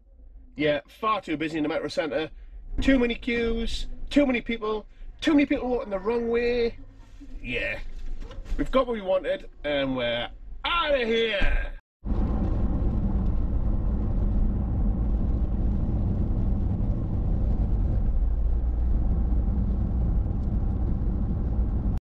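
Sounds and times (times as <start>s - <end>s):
car road and engine rumble: 12.0s - 22.0s.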